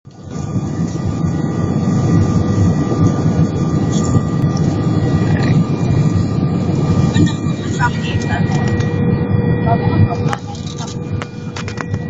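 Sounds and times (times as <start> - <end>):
faint steady whine: 0.1 - 12.0
jet engine and airflow rumble: 0.1 - 12.0.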